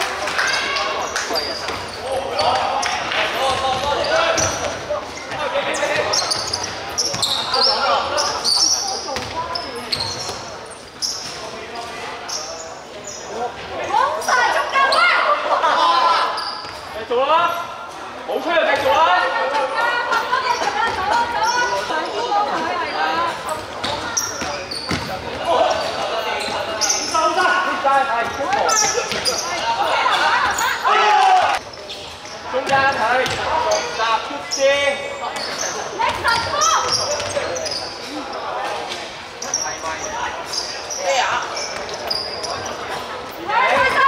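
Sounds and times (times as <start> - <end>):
voices of players and spectators: 0.0 - 44.0
basketball bouncing on wooden court: 9.2 - 10.4, 23.8 - 25.3, 32.6 - 33.5.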